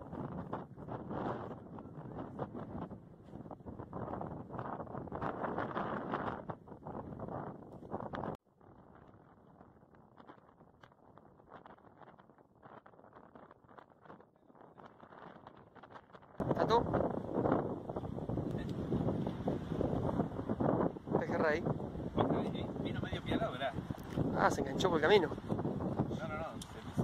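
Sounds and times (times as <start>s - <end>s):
steady wind hiss: 0.0s - 27.0s
wind buffeting microphone: 0.0s - 27.0s.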